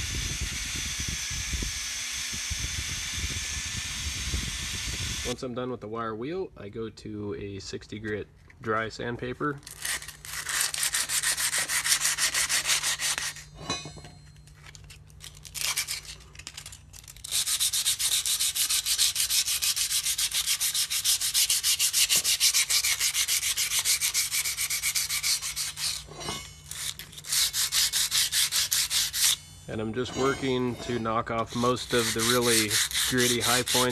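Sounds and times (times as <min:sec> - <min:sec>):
sandpaper scraping on steel: 0:09.7 - 0:13.9, 0:14.6 - 0:33.9.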